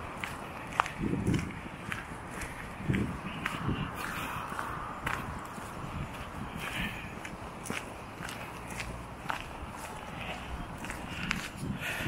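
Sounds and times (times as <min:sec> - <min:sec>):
footsteps on wet pavement: 0:00.0 - 0:12.0.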